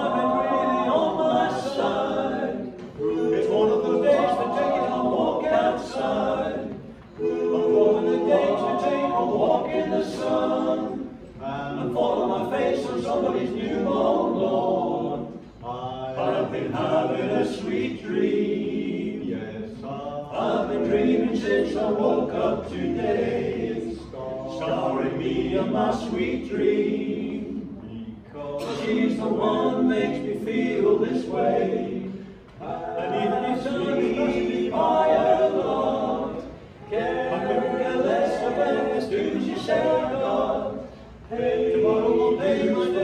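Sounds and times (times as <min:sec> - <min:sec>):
male a cappella group singing: 0:00.0 - 0:43.0.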